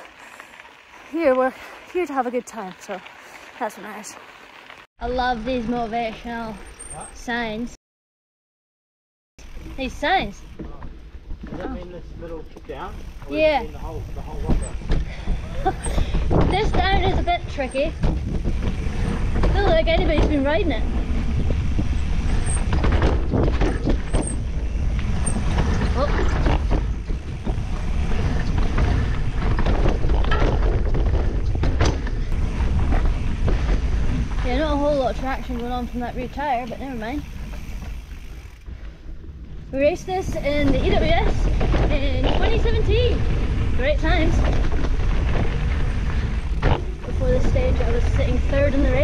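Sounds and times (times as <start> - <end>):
bike tyres rumbling on dirt: 0.0 - 7.5, 9.4 - 49.0
bike knocks and rattles: 9.5 - 49.0
wind buffeting microphone: 13.0 - 38.8.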